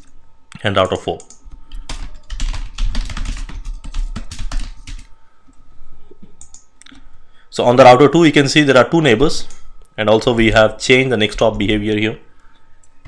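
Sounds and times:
typing on computer keyboard: 1.2 - 5.1
keyboard clicks: 6.4 - 6.7.

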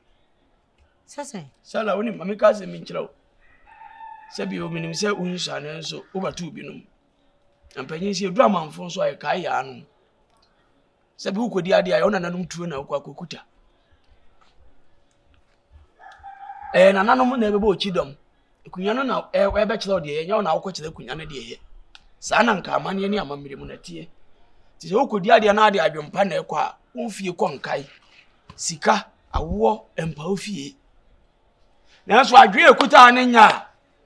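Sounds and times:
rooster crowing: 3.4 - 6.4, 16.0 - 18.0.

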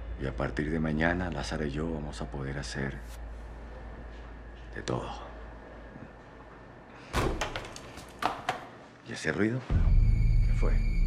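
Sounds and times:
door banging: 7.2 - 8.7.

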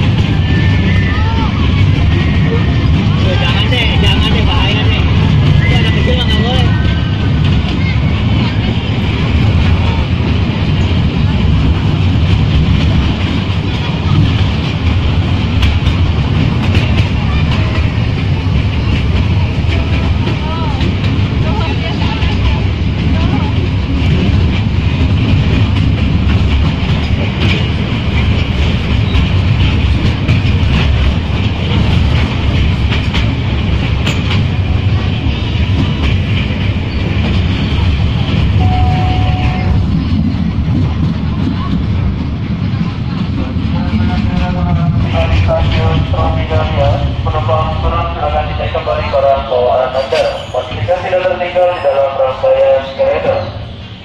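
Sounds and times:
small train running on track: 0.0 - 54.0
short steady tone: 38.6 - 39.8.

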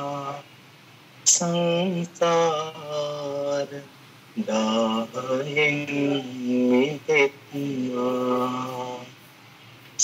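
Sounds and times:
voices chanting together: 0.0 - 0.5, 1.3 - 9.2.

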